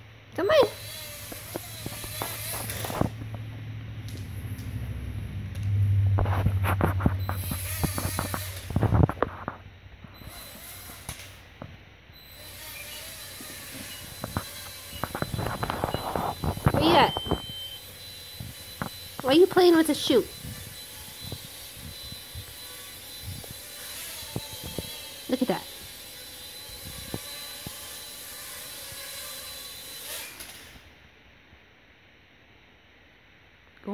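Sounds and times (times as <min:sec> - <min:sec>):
toy drone motors humming: 0:00.4 - 0:03.4, 0:07.2 - 0:09.2, 0:10.1 - 0:11.5, 0:12.2 - 0:31.0.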